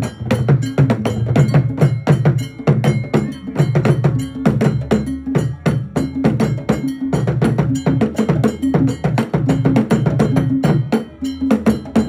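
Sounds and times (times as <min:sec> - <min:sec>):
drum ensemble playing: 0:00.0 - 0:12.0.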